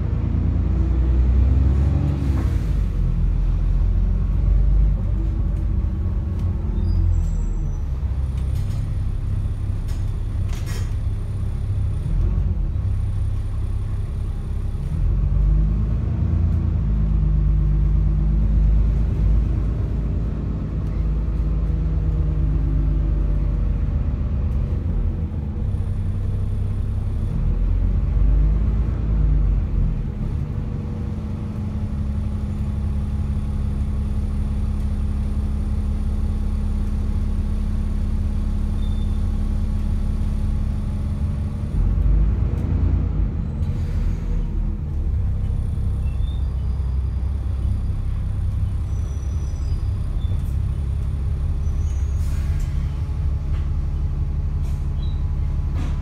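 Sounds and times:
bus diesel engine: 0.0s - 56.0s.

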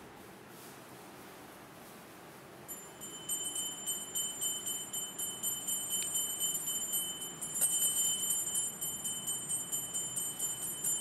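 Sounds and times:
hand bell ringing: 2.7s - 11.0s.

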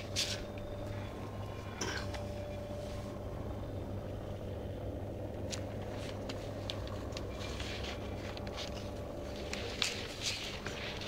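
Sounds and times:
faint steady tone: 0.0s - 11.0s
low background hum: 0.0s - 11.0s.

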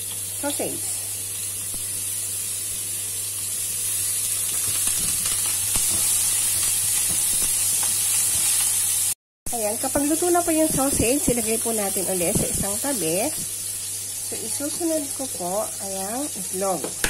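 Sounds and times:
sausage sizzling in hot oil: 0.0s - 17.0s
spatula scraping a pan: 4.5s - 9.0s.

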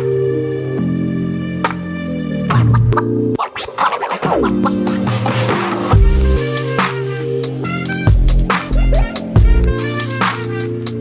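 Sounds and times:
electronic music: 0.0s - 11.0s
dj scratching: 2.5s - 11.0s.

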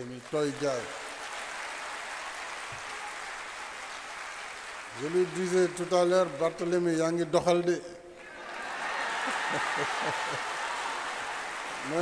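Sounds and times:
audience applauding: 0.0s - 6.9s, 8.3s - 12.0s.

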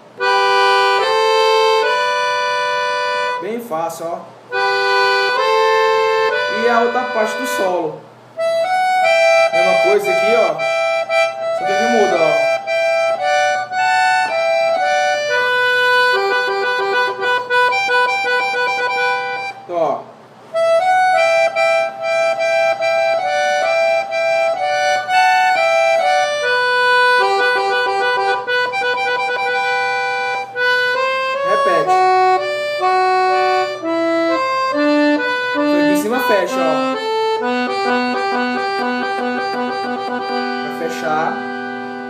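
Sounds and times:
accordion melody: 0.0s - 42.0s.

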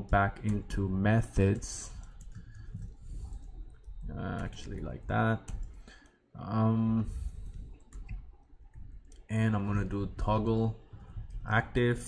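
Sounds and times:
computer keyboard clicks: 2.0s - 4.6s, 5.4s - 6.1s, 7.4s - 9.3s.

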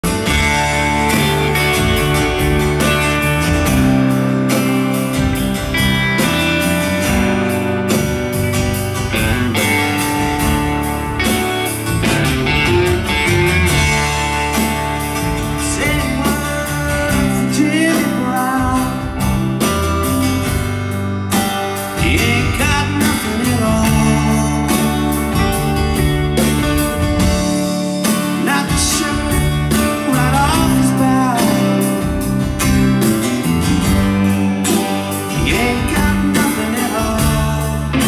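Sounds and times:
live rock band playing: 0.0s - 38.0s.

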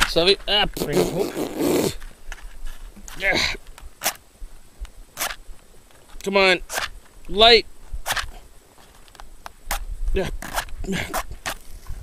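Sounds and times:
match scraping on matchbox: 5.2s - 5.4s, 6.7s - 6.9s, 8.0s - 8.3s, 9.7s - 11.7s.

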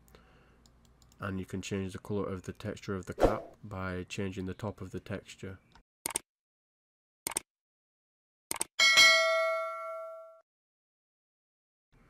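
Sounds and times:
bright bell ding: 8.8s - 10.4s.

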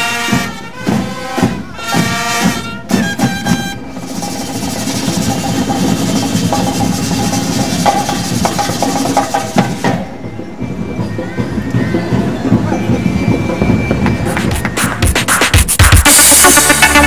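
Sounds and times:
brass chords: 0.0s - 3.9s, 15.6s - 17.0s
marching band drums: 0.0s - 17.0s.

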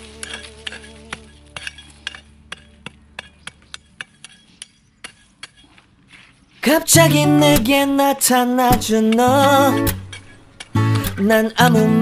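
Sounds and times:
hoe chopping dry soil: 0.0s - 8.0s.

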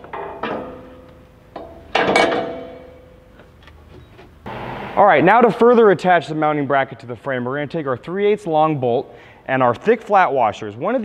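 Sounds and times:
metal bracket clanking on frame: 0.0s - 3.1s.

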